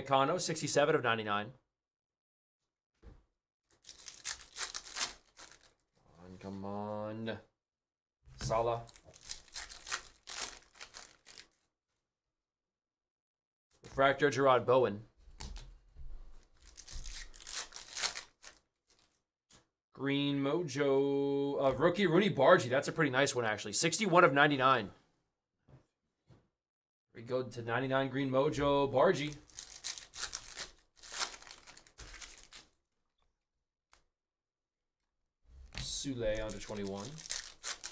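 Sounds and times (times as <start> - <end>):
trading cards shuffling: 3.8 - 5.7, 16.4 - 19.6, 29.2 - 32.7, 35.7 - 37.9.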